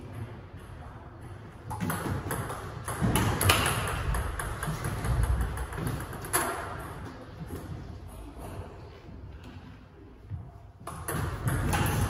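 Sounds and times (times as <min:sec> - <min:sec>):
ball bouncing on table: 0:01.7 - 0:06.6
ping pong ball clicking on paddles: 0:01.7 - 0:07.1, 0:10.8 - 0:12.0.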